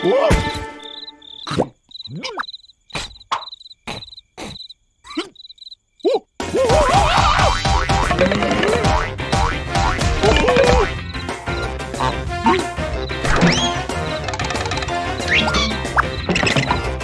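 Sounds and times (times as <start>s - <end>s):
crickets chirping: 0.6s - 6.4s, 10.8s - 11.7s, 14.1s - 17.0s
busy music: 6.4s - 17.0s.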